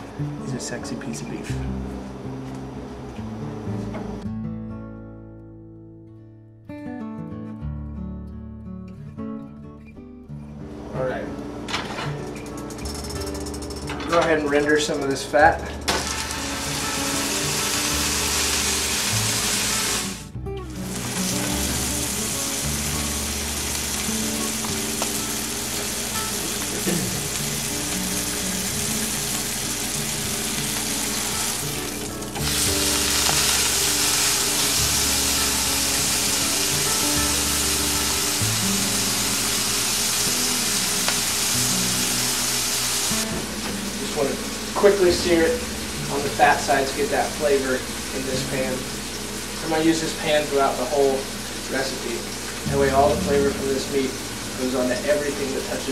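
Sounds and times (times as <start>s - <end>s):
meat sizzling in a frying pan: 15.9s - 43.2s.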